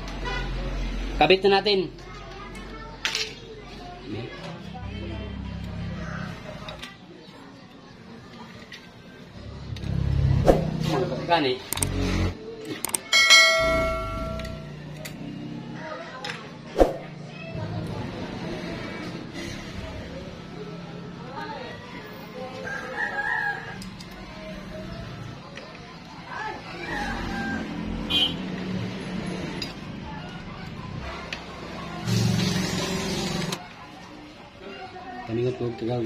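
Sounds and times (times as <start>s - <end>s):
notification bell ding: 13.1s - 14.7s.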